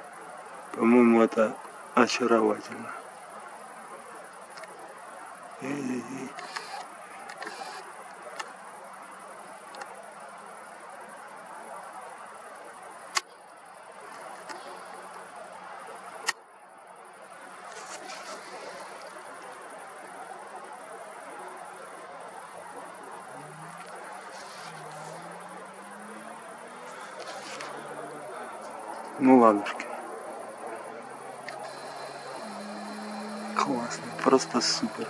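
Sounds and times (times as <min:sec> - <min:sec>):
crickets chirping: 0:00.0 - 0:35.0
faint rising hum: 0:20.8 - 0:35.0
sharp clicks: 0:31.4 - 0:34.6.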